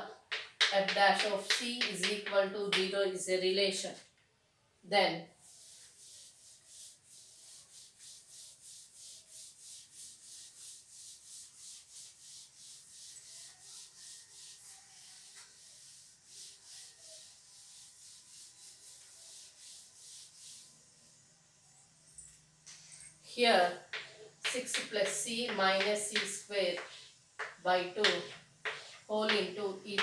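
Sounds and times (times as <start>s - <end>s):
duster scrubbing a blackboard: 0.2s - 2.8s, 5.4s - 21.6s, 23.4s - 30.0s.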